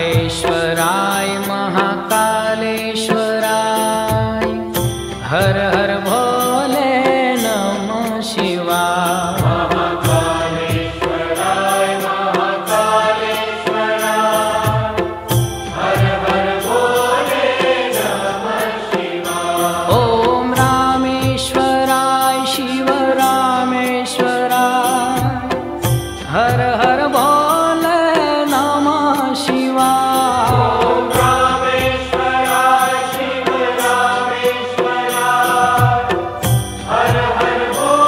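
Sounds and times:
mantra chant sung: 0.0 - 25.7, 26.3 - 38.0
drum beat: 9.3 - 12.6, 13.6 - 18.0, 24.2 - 28.7, 34.8 - 38.0.

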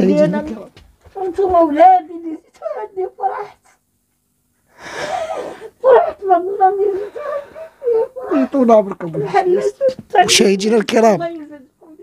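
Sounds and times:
woman speaking: 0.0 - 3.8, 5.8 - 12.0
woman sobbing: 2.4 - 3.6, 4.9 - 10.4.

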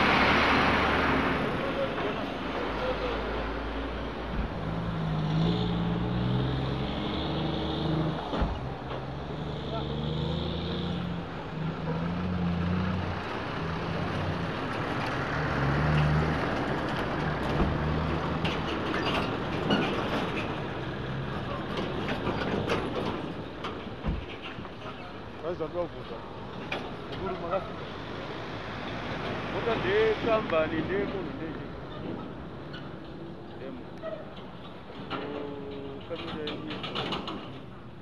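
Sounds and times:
heavy trucks engine and road noise: 0.0 - 38.0.

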